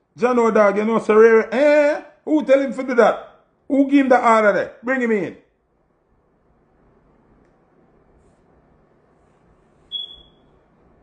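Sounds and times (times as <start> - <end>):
high-pitched electronic beep: 9.9 - 10.4.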